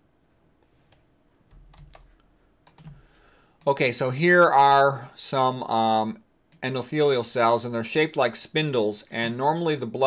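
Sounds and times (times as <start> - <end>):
computer keys clicking: 1.5 - 3.0.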